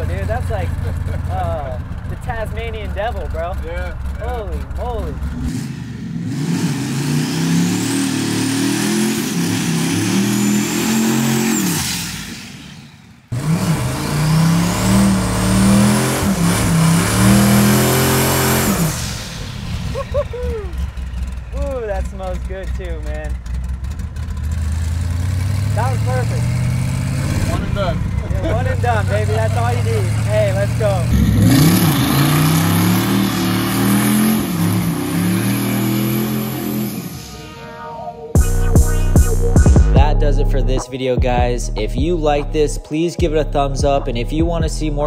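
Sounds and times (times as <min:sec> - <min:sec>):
car engine accelerating hard: 0:00.0 - 0:37.4
turbo whine: 0:25.6 - 0:40.6.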